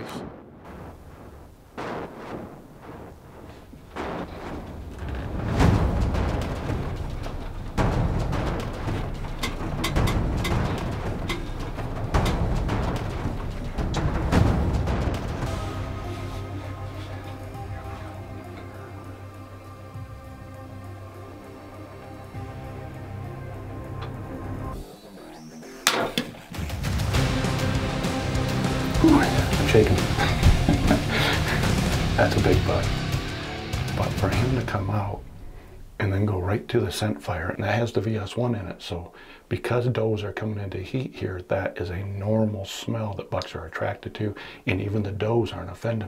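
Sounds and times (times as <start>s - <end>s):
background music with heavy drums: 1.8s - 24.8s, 25.8s - 34.9s.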